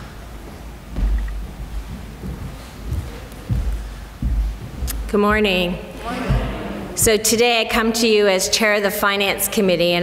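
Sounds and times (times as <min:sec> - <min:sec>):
footsteps on hollow wooden platform: 0:00.9 - 0:07.1.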